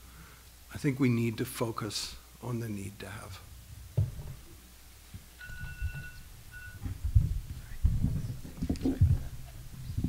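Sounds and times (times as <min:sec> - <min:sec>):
soft dull low thumps: 0:05.1 - 0:10.0
faint high beep: 0:05.4 - 0:06.9.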